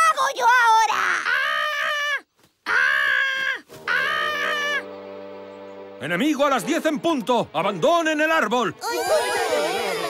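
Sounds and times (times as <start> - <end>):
held musical chord: 4.3 - 8.8
cartoon character high cries: 8.8 - 10.0.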